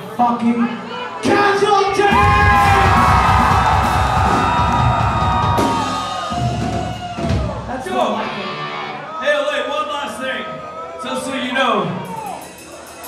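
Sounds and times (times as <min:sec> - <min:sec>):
punk band playing loud: 0:02.0 - 0:08.6, 0:12.0 - 0:13.0.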